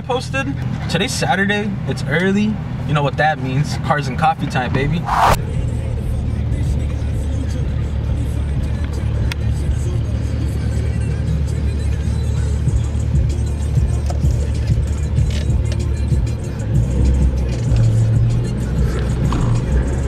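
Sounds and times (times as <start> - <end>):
car driving drone: 0.2 - 20.0
music playing: 5.2 - 20.0.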